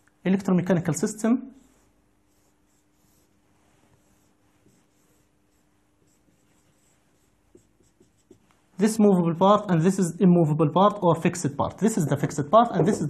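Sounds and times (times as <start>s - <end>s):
faint steady hum: 0.0s - 13.0s
marker scratching on whiteboard: 1.6s - 8.6s, 11.8s - 13.0s.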